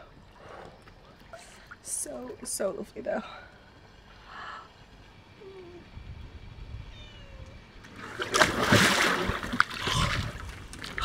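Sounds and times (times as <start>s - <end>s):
water splashing in paddling pool: 7.8s - 11.0s.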